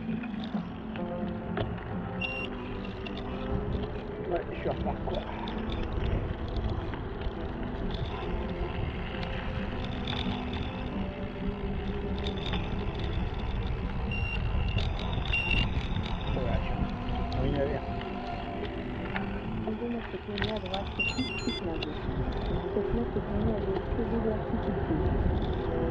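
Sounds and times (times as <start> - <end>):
tyres rolling on wet tarmac: 0.0 - 21.1, 21.7 - 25.9
wind rumbling on microphone: 0.0 - 25.9.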